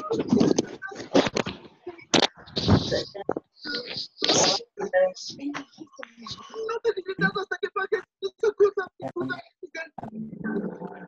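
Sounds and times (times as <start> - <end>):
person speaking indistinctly: 0.0 - 11.0.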